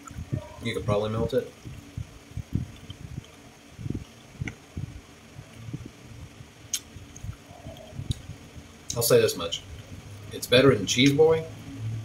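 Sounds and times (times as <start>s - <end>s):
man chewing close to microphone: 1.5s - 5.9s, 6.7s - 9.0s
faint mouth clicks: 2.6s - 4.6s, 6.7s - 8.3s.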